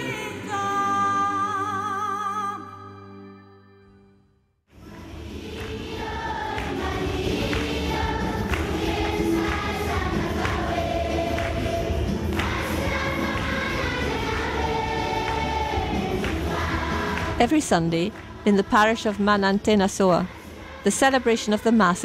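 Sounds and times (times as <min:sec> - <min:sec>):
congregation singing a hymn: 0:04.8 - 0:22.0.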